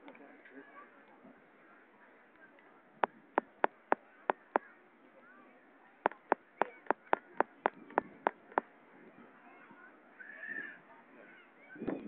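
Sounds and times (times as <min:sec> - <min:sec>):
sharp percussive strikes: 0:03.4 - 0:04.6.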